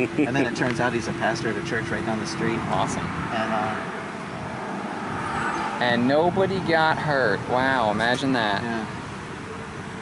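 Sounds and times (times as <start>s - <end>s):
man speaking: 0.0s - 3.9s, 5.8s - 8.9s
road traffic noise: 0.0s - 10.0s.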